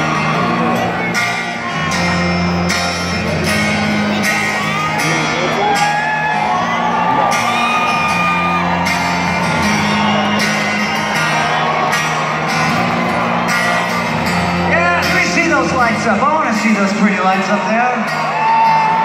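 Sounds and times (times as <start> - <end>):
live concert music: 0.0 - 19.0.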